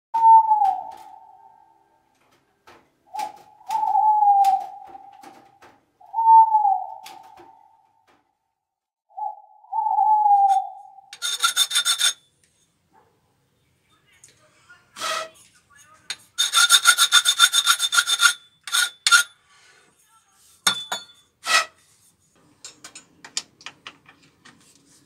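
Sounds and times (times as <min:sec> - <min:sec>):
creaking squeak: 0:11.2 - 0:12.2, 0:16.4 - 0:19.3.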